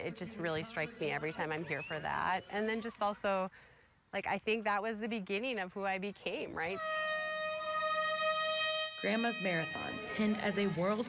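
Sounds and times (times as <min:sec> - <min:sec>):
race starting horn: 0:06.6 - 0:10.4.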